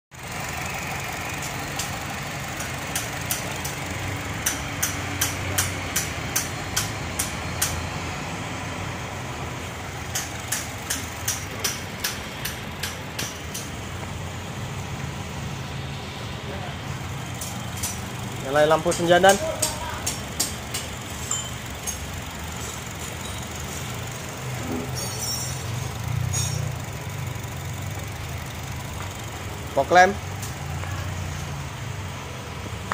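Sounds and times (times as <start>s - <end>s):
car engine idling: 0.1s - 32.9s
sharp ticking: 0.6s - 7.9s, 17.0s - 22.5s.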